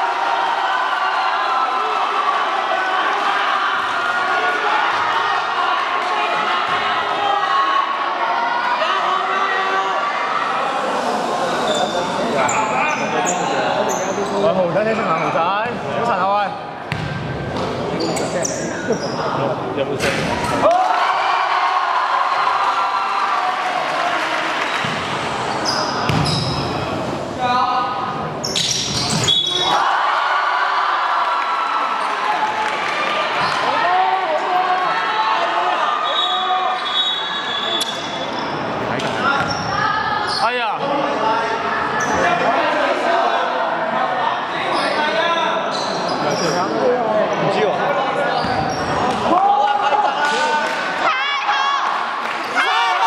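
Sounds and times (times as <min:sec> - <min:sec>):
people talking and calling out: 0:01.0 - 0:22.2.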